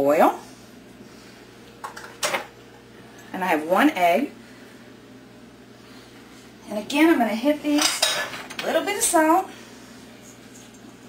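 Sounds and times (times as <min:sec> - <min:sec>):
kitchenware scraping: 0:01.8 - 0:02.5, 0:07.7 - 0:09.1.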